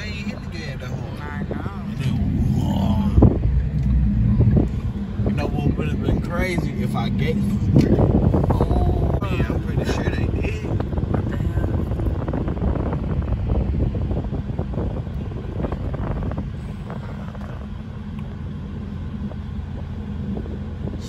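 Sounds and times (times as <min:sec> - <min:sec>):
engine and tyre rumble: 0:00.0 - 0:21.0.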